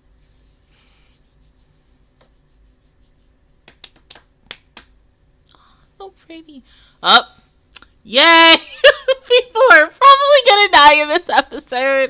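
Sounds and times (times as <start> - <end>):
low hum: 0.0 - 7.7.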